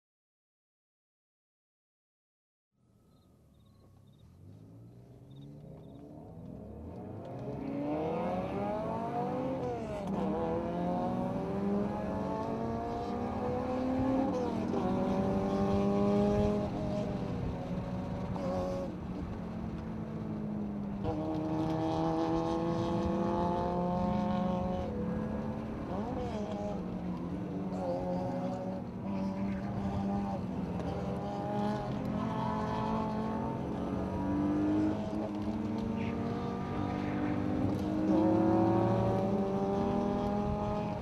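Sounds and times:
tyre and road noise: 3.6s - 41.0s
car engine revving: 4.0s - 41.0s.

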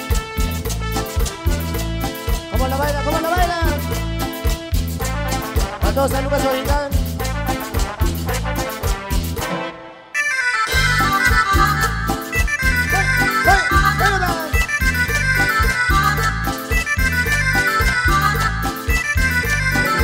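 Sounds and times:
accordion band music: 0.0s - 20.0s.

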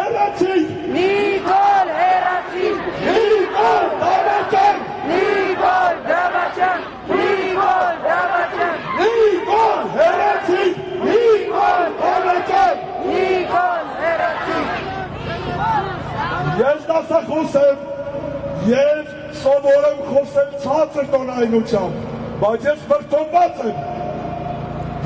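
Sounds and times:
crowd shouting slogans: 0.0s - 16.8s.

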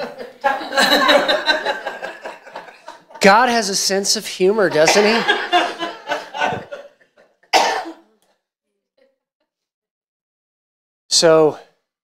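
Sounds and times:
person coughing: 4.7s - 5.5s, 7.5s - 8.1s.

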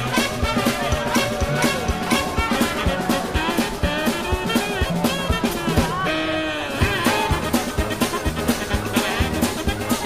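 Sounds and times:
street band playing: 0.0s - 10.0s
upright double bass: 0.0s - 10.0s.

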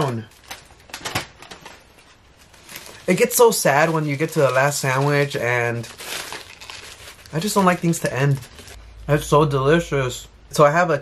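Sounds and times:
paper bag and foil rustling: 0.0s - 8.8s
sharp foil crackle: 0.0s - 8.8s.

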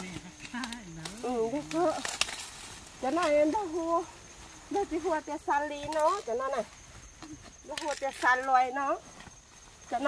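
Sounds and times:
corn ears snapping off stalks: 0.0s - 3.4s, 7.2s - 8.6s.

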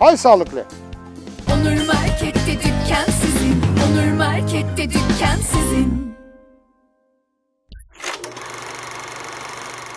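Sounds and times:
mechanical whirring rattle: 8.0s - 9.9s.

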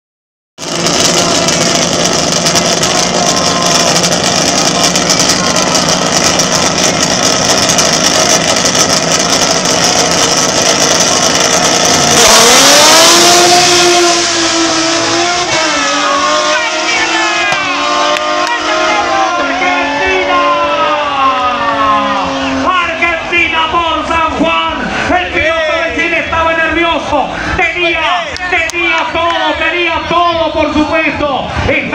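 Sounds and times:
drag racing cars accelerating: 0.6s - 31.9s.

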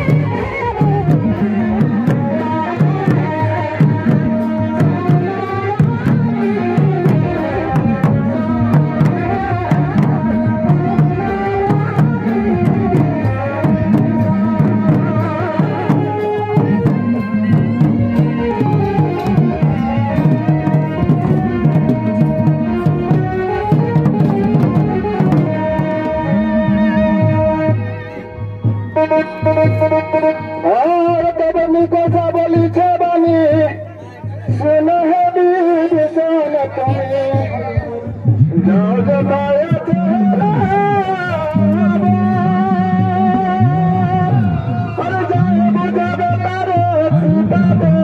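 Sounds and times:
barrel drums beating: 0.0s - 31.2s
sustained melodic line: 0.1s - 31.8s.

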